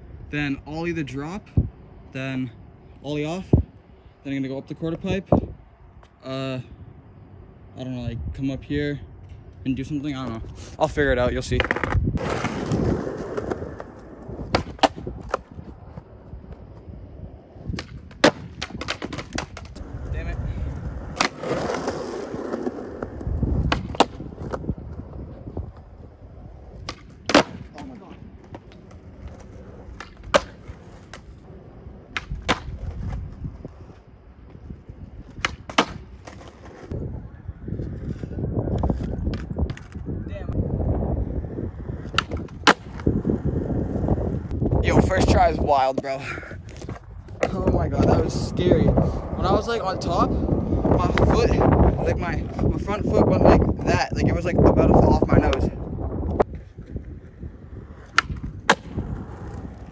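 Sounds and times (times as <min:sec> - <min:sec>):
skateboard wheels rolling on concrete: 0:00.0 - 0:59.9
skateboard tail popping: 0:11.5 - 0:17.0, 0:17.6 - 0:26.0, 0:26.6 - 0:37.0, 0:37.8 - 0:40.1, 0:41.7 - 0:44.6, 0:45.9 - 0:48.4, 0:56.2 - 0:59.9
skateboard slapping down: 0:21.1 - 0:24.6, 0:26.8 - 0:27.9, 0:28.5 - 0:31.3, 0:32.1 - 0:32.8, 0:35.4 - 0:36.7, 0:58.0 - 0:59.9.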